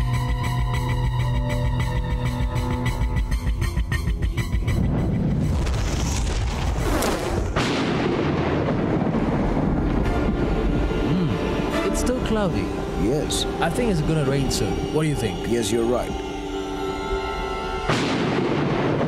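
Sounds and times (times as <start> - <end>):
dramatic film music: 0.0 - 8.3, 9.2 - 19.0
storm noise: 4.4 - 15.6, 17.8 - 19.0
thunder rumble: 4.6 - 14.9, 17.9 - 19.0
sharp thunderclap: 4.8 - 11.6, 17.9 - 19.0.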